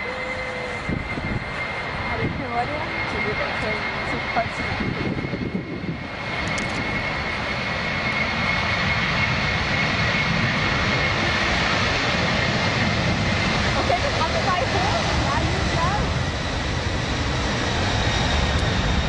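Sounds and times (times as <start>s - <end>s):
high engine whine: 0.0s - 19.0s
jet engines at takeoff thrust: 0.0s - 19.0s.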